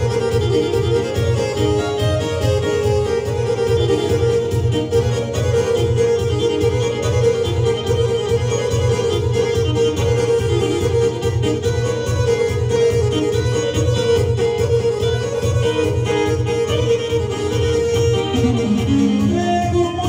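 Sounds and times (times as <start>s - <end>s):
dance music on electronic keyboards: 0.0s - 20.0s.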